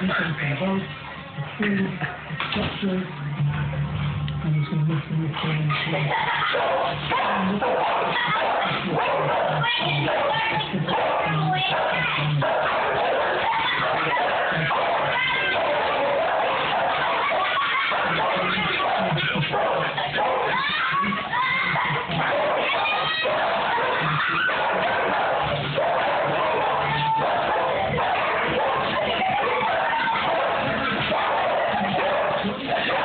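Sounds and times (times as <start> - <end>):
dogs barking: 5.4 - 33.0.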